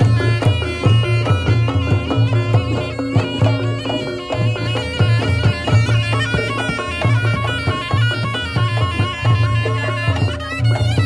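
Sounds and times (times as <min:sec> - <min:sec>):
drum strokes: 0:00.0 - 0:11.0
shrill reed trumpet melody: 0:00.1 - 0:11.0.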